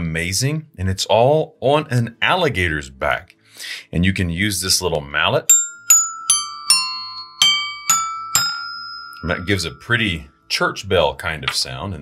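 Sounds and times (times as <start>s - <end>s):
toy xylophone notes: 5.4s - 10.2s.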